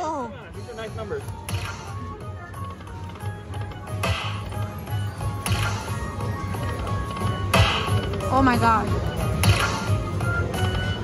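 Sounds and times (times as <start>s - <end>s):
electronic game music: 0.8s - 11.0s.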